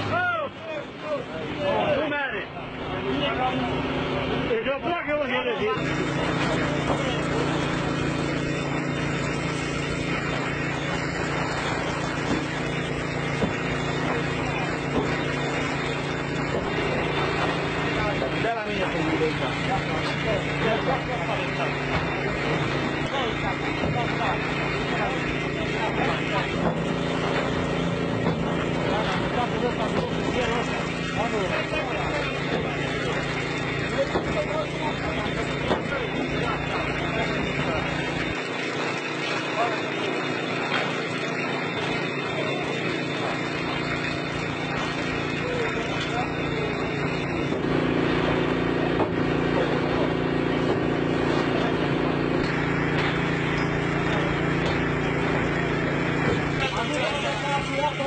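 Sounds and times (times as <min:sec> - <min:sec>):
motor humming: 0:00.0 - 0:58.0
people talking: 0:00.0 - 0:58.0.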